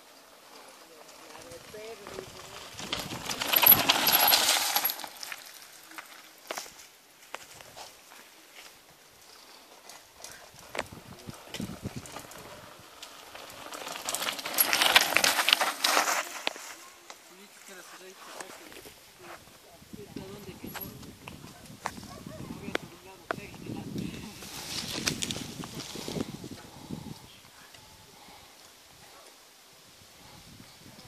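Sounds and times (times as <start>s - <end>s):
bike tyres crunching over leaves: 0.0s - 19.6s, 23.5s - 26.9s.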